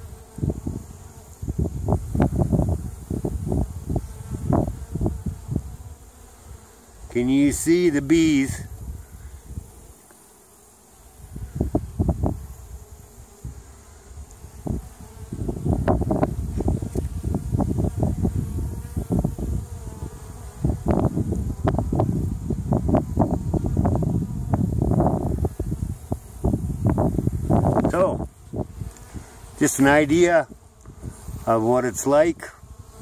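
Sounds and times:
honey bees buzzing: 0.0 - 33.0.

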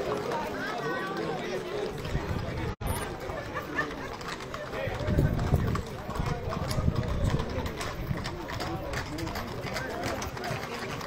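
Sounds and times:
horse hooves on pavement: 0.0 - 11.0
people talking: 0.0 - 11.0.

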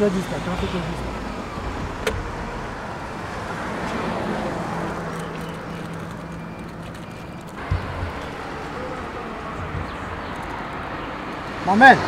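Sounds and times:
vehicle engine running: 0.0 - 11.5
roadside traffic: 0.0 - 12.0.

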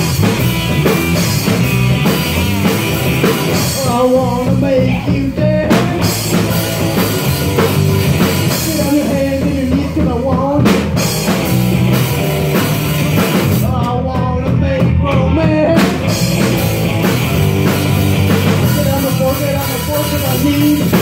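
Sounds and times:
rock band playing live: 0.0 - 21.0.

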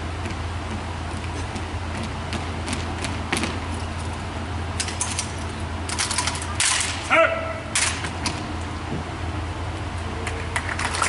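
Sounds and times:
rifles clattering together: 4.8 - 7.1, 7.7 - 8.4.

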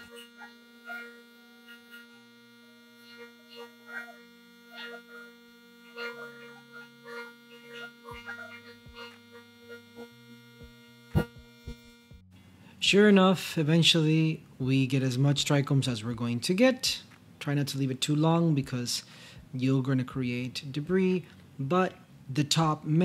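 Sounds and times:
vibration motor humming: 0.0 - 12.5.

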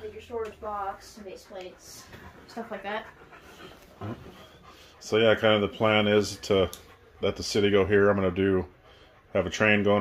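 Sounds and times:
dog panting: 0.0 - 10.0
dog low vocal sound: 3.2 - 9.6.

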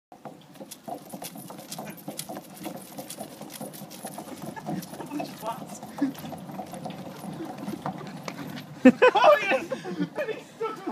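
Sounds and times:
footfalls of people running: 0.1 - 10.2.

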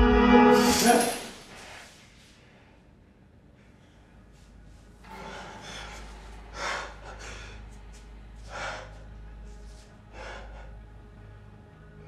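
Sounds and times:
low steady hum: 0.0 - 12.0
man breathing hard: 5.1 - 11.0.

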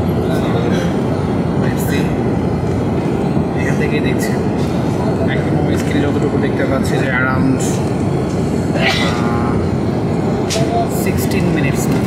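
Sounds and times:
airliner engines rumbling: 0.0 - 12.0.

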